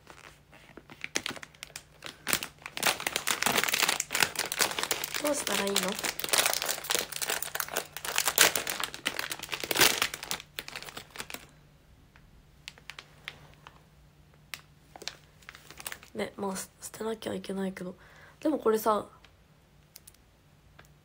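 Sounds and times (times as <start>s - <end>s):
wrapper crinkling: 0.0s - 11.6s, 12.6s - 13.8s, 14.5s - 16.2s.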